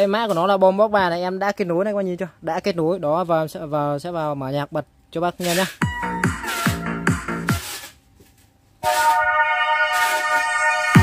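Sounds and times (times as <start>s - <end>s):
dance music from speaker: 5.8s - 7.8s, 8.8s - 11.0s
held synth chord: 8.8s - 11.0s.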